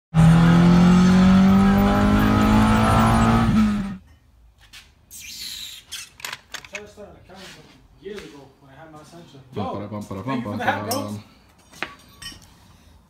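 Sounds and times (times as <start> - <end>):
car engine revving high: 0.1 - 4.0.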